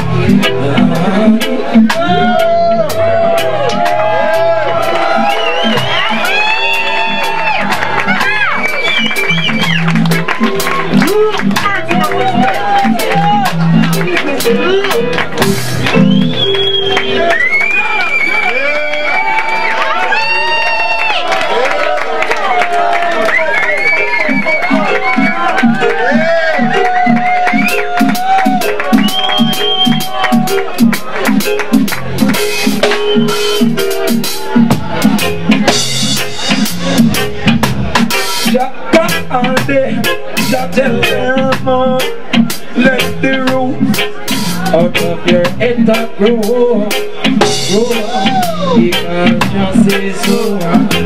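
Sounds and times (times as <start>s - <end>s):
crowd noise: 0.0s - 51.0s
reggae band playing: 0.0s - 51.0s
drum kit sharp strikes: 13.0s - 16.2s, 26.6s - 51.0s.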